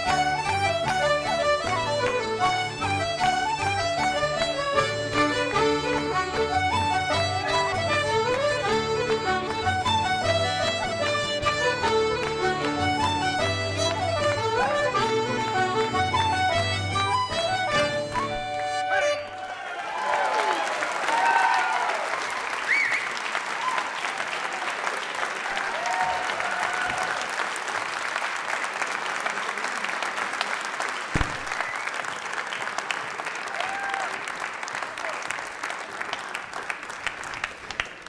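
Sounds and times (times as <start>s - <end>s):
audience applauding: 17.7s - 38.0s
whoops and cheers: 19.2s - 24.5s, 25.4s - 27.3s, 33.5s - 34.3s.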